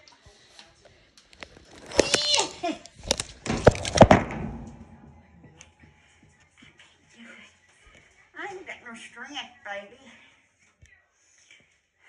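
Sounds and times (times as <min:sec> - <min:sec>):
loud knocks: 0:03.5 - 0:05.1.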